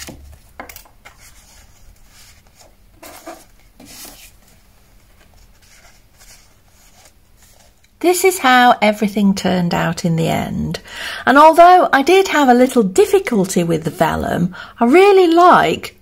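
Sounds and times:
paper cards rustling and tapping: 0:00.0 - 0:08.0.

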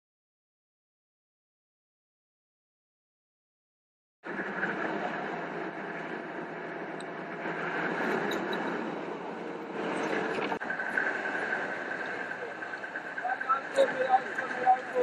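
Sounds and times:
car engine and road noise: 0:04.2 - 0:15.0.

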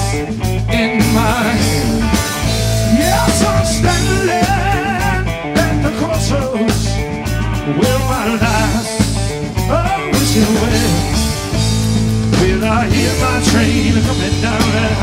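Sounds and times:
blues-rock band playing: 0:00.0 - 0:15.0
wavering lead guitar line: 0:00.0 - 0:15.0.

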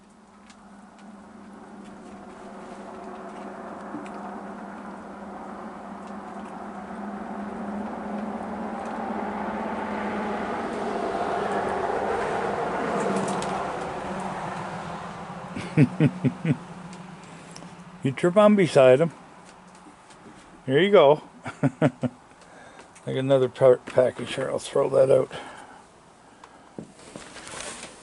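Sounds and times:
motor vehicle passing: 0:00.0 - 0:26.8.

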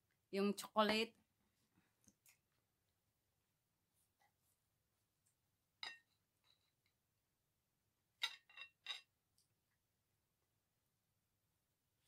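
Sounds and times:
knife clinking on ceramic plate: 0:08.2 - 0:09.1.

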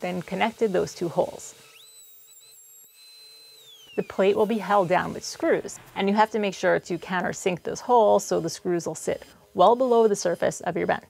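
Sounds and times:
router motor whining: 0:00.0 - 0:11.0.

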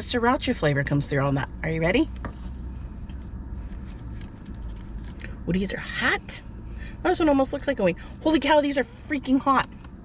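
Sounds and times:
steady low car hum: 0:00.0 - 0:10.0.

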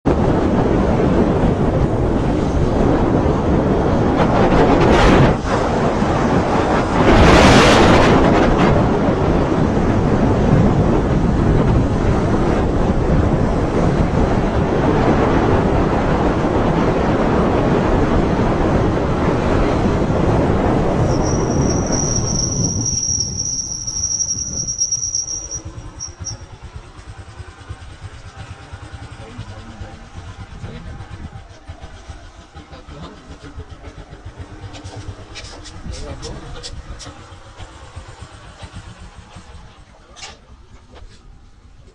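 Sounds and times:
wind rushing over microphone: 0:00.0 - 0:32.6
motorcycle road noise: 0:00.0 - 0:41.9
thin high squeal: 0:21.0 - 0:26.4.

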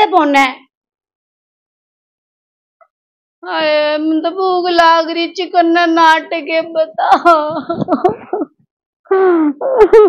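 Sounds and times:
woman wailing and sobbing: 0:09.1 - 0:10.0.

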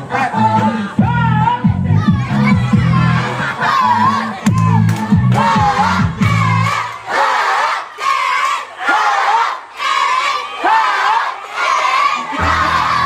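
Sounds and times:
music with heavy bass: 0:00.0 - 0:06.8, 0:12.3 - 0:13.0
children shouting in unison: 0:01.9 - 0:13.0.

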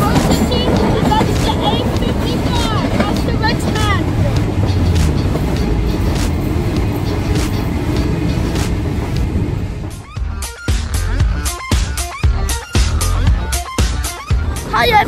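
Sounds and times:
train rumbling past: 0:00.0 - 0:12.2.

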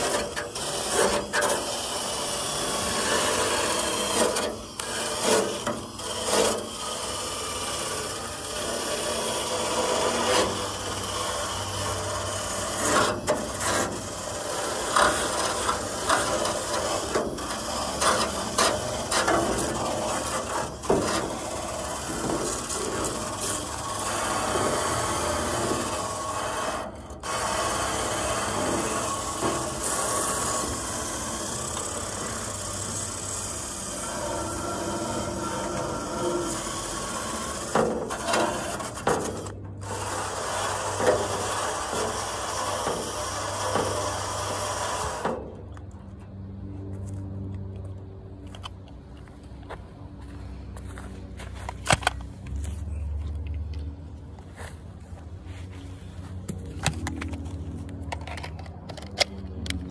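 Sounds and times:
power tool motor humming: 0:00.0 - 0:45.4
tool grinding against metal: 0:00.0 - 0:45.5.

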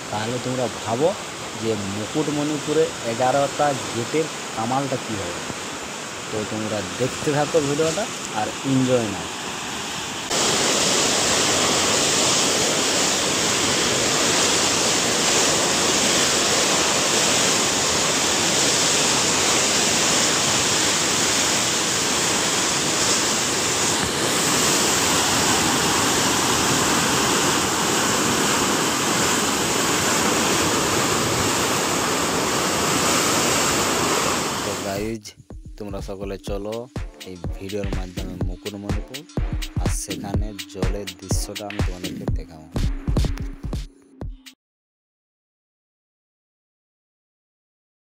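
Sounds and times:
water rushing down a channel: 0:00.0 - 0:34.9.

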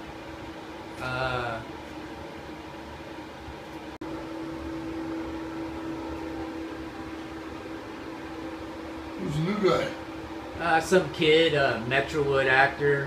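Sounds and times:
steady machine hum: 0:00.0 - 0:13.0.

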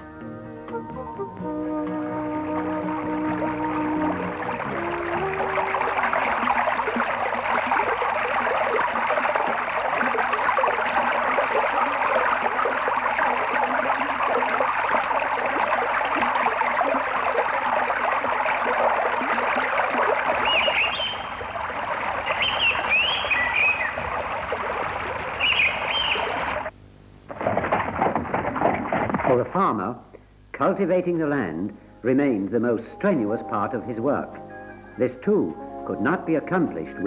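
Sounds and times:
water splashing off water wheel: 0:02.2 - 0:26.7, 0:27.3 - 0:29.6
bird chirping: 0:20.4 - 0:21.4, 0:22.2 - 0:24.1, 0:25.4 - 0:26.5.

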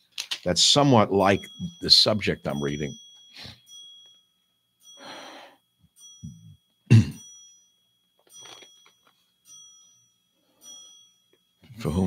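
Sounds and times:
small bell ringing: 0:00.4 - 0:12.0.

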